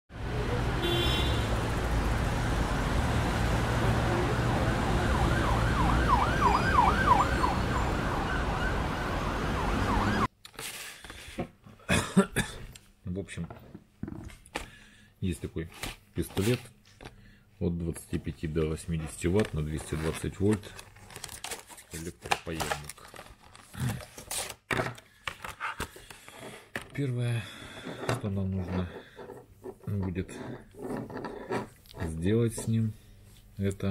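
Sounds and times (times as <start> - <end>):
road traffic rumble: 0.1 - 10.3
siren wailing: 3.8 - 10.3
plastic packaging crinkling: 19.0 - 26.3.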